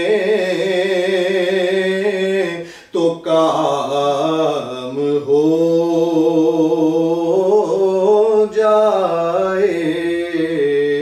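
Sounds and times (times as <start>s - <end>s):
man singing unaccompanied: 0.0s - 11.0s.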